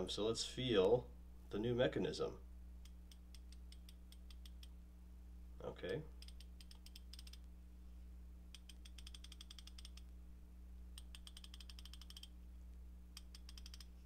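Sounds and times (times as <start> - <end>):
ratchet clicking: 8.6 - 10.0, 11.0 - 12.3, 13.2 - 13.9.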